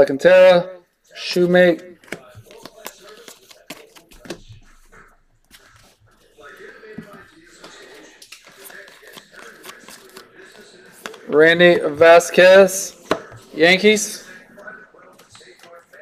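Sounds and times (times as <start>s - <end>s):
cards rustling and clicking: 1.7s - 12.0s, 12.6s - 14.3s, 15.1s - 16.0s.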